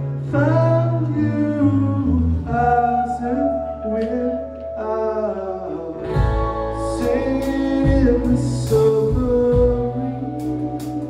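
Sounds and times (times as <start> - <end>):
electric guitar: 0.0 - 11.0
keyboard: 0.0 - 11.0
person singing: 0.0 - 11.0
bass and drums: 6.0 - 11.0.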